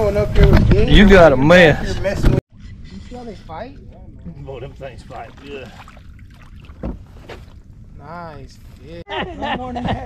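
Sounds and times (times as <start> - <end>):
fish splashing at water surface: 5.1 - 7.6.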